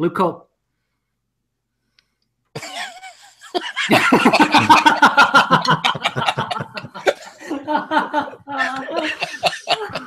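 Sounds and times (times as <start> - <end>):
man laughing: 2.6 - 10.0.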